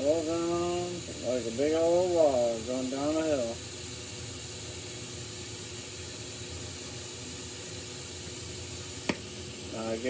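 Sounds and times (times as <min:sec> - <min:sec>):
torch flame hissing: 0:00.0 - 0:10.0.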